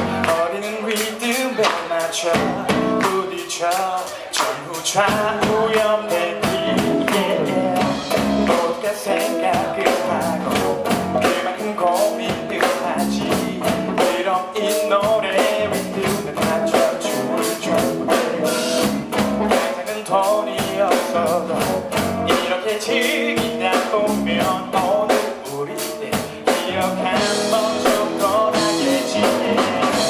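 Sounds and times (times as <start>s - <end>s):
electric guitar: 0.0s - 3.4s, 4.0s - 30.0s
drum kit beat: 0.0s - 30.0s.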